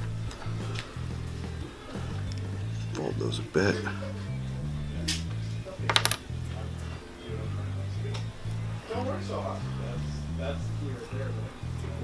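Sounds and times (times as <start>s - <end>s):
music with repeating bass: 0.0s - 12.0s.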